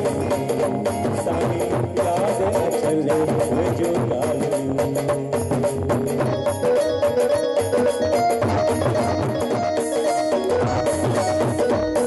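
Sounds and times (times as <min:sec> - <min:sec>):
drum beat: 0:00.0 - 0:12.0
band playing wavering melody: 0:04.2 - 0:12.0.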